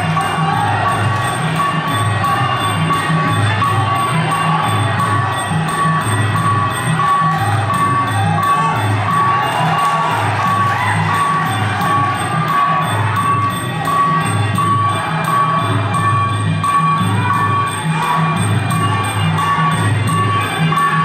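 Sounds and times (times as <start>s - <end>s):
crowd cheering: 0.0s - 21.0s
drums beating steady pulse: 0.0s - 21.0s.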